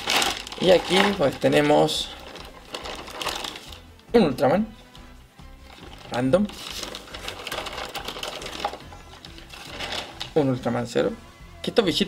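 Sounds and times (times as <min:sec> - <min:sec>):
plastic bag rustling: 0:00.0 - 0:03.9, 0:05.6 - 0:10.6.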